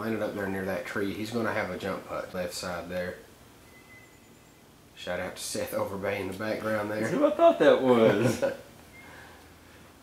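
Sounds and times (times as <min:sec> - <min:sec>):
background hiss: 0:00.0 - 0:10.0
faint thin high tone: 0:03.6 - 0:04.6.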